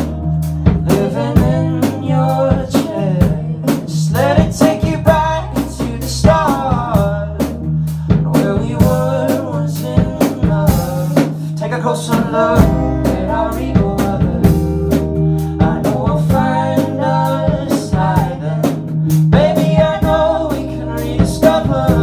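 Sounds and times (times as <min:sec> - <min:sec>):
drum kit beat: 0:00.0 - 0:22.0
low bass notes: 0:00.0 - 0:22.0.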